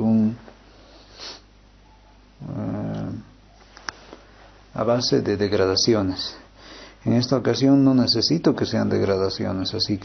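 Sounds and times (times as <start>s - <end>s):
man breathing: 6.4s - 7.0s.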